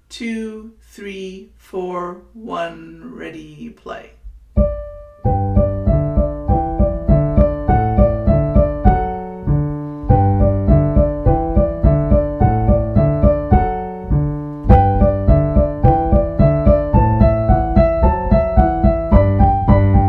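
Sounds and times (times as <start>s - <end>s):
piano playing: 4.5s - 20.0s.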